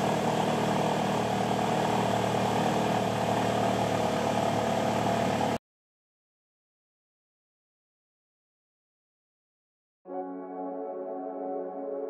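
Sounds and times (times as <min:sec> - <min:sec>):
car engine idling: 0:00.0 - 0:05.6.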